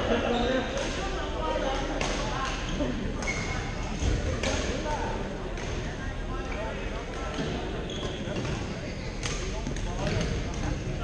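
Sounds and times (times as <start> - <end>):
shoe squeak: 7.8 - 9.2.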